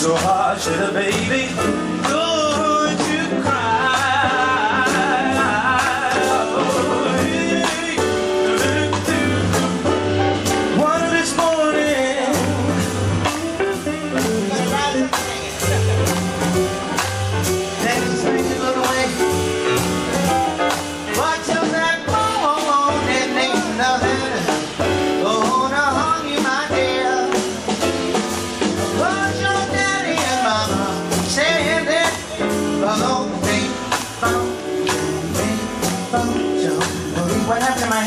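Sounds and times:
person singing: 0.0s - 9.6s, 10.6s - 16.4s, 17.6s - 27.8s, 28.9s - 38.0s
jazz combo playing: 0.0s - 38.0s.

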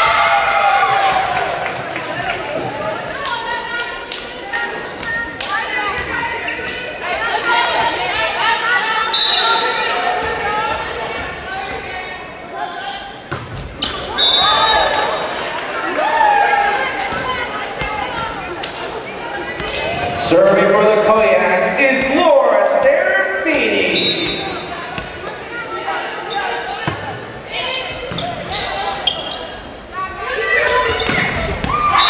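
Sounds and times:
voices calling and chattering: 1.3s - 32.0s.

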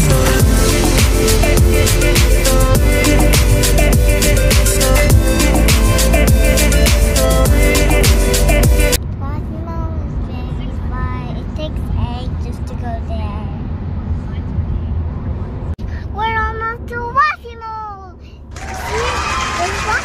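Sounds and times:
car road rumble: 8.8s - 17.1s
child talking: 9.2s - 13.6s, 15.9s - 18.4s, 19.0s - 20.0s.

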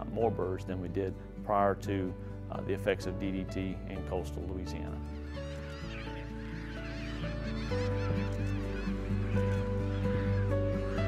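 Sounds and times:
music of held chords: 0.0s - 11.0s
seabird colony calling: 0.0s - 11.0s.

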